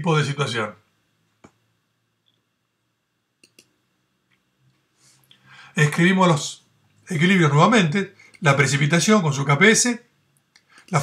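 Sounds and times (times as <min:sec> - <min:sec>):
computer mouse clicks: 0:03.4 - 0:04.4.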